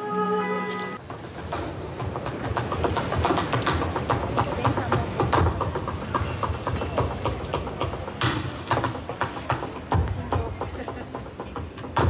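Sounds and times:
tap shoes on stage floor: 1.5 - 12.0.

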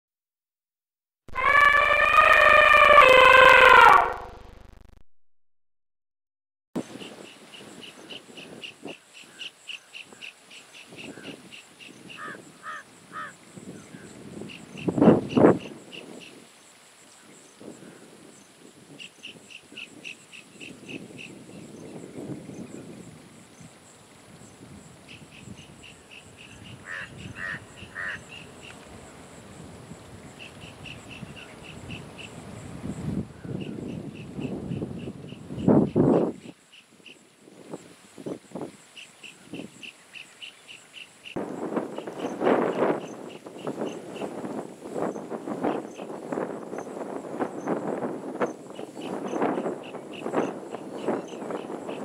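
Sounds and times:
horn-like sustained tone: 1.3 - 4.4
faint high insect hiss: 6.8 - 52.0.

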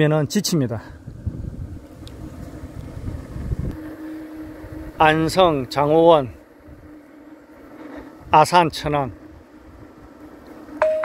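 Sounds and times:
faint steady hum: 0.1 - 11.0
wind buffeting microphone: 0.8 - 7.0.

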